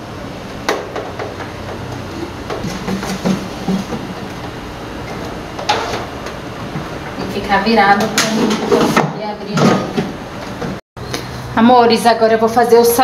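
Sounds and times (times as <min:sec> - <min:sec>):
air fryer fan whirring: 0:00.0 - 0:13.0.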